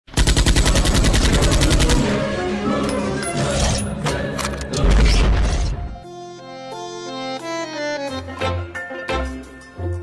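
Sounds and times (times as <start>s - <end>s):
rapid machine-gun fire: 0.1s - 2.1s.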